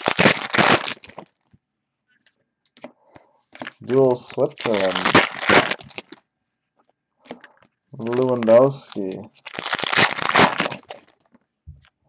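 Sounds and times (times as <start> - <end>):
foil wrapper tearing: 0.0 - 1.3, 3.6 - 6.2, 8.0 - 11.3.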